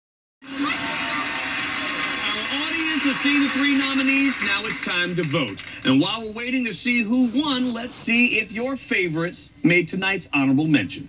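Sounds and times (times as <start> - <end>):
television audio: 0.4 - 11.0.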